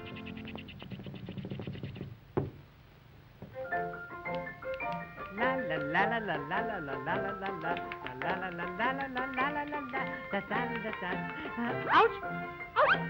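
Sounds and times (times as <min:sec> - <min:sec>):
person singing la la: 0:05.2 - 0:13.0
cartoon orchestra music: 0:10.0 - 0:13.0.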